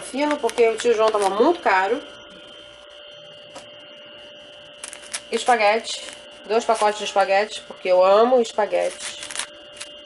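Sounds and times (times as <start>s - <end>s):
electrical hum with whining tones: 0.0s - 10.0s.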